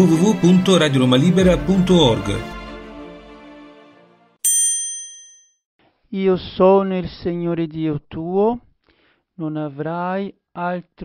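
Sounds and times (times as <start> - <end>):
intro music: 0.0 - 4.4
high bell ding: 4.4 - 5.6.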